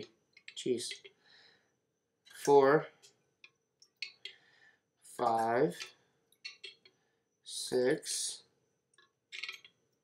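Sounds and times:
metal spoon clicking against jars: 5.8s - 6.9s.

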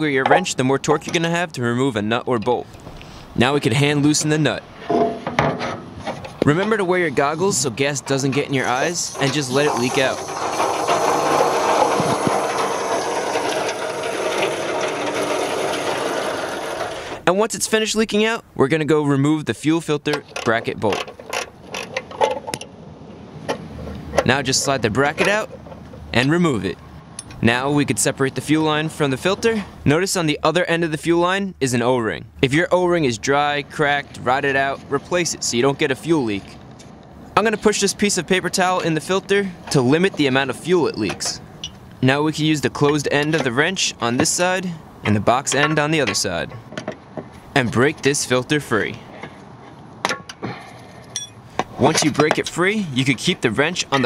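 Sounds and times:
wrenches clanking on metal: 4.8s - 17.2s, 20.1s - 22.7s, 39.0s - 41.9s, 42.7s - 46.9s, 50.1s - 54.0s
person speaking: 6.4s - 10.6s, 42.0s - 46.6s, 47.4s - 49.1s, 51.7s - 54.0s
metal tools clicking and clinking: 41.1s - 41.8s, 51.0s - 52.6s
metallic ring: 51.1s - 51.4s.

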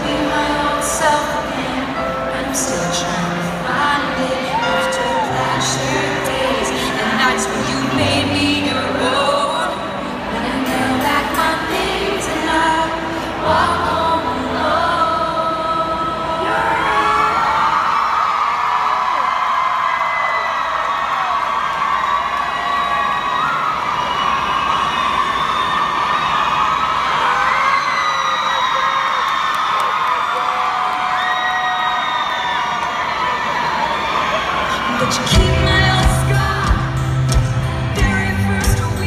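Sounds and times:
concert audience screaming and cheering: 0.0s - 39.0s.

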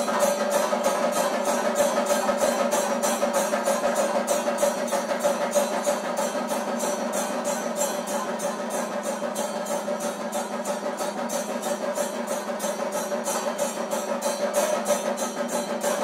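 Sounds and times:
drums beaten with sticks: 0.0s - 16.0s
small hand cymbals: 0.0s - 16.0s.

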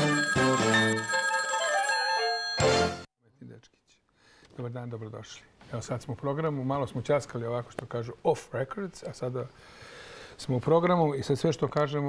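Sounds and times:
jingle music: 0.0s - 3.1s
telephone bell ringing: 0.0s - 3.1s.

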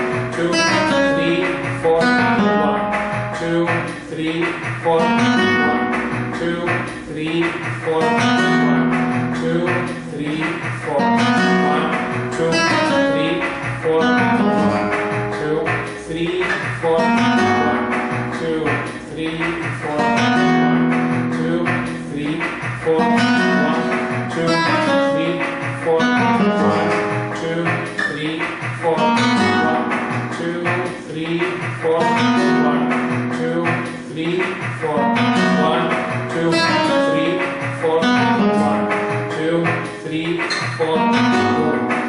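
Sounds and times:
flamenco guitar playing: 0.0s - 42.0s.

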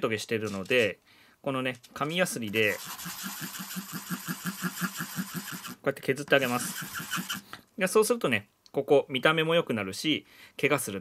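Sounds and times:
wood scratching on sandpaper: 2.3s - 5.8s, 6.4s - 7.4s.

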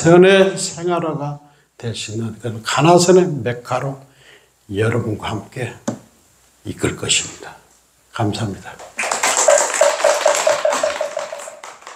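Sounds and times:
congregation applauding: 8.8s - 11.9s.

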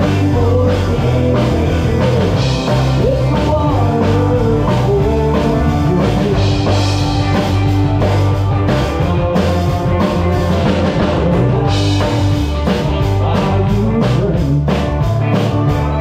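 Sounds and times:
fiddle lead line: 0.0s - 16.0s
live band playing: 0.0s - 16.0s.

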